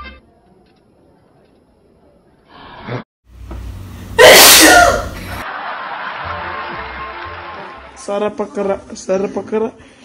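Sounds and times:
monkey sneezing: 4.2 - 5.2.

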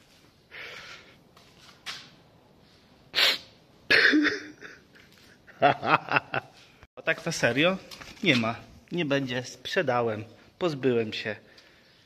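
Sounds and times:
man coughing: 3.9 - 4.9.

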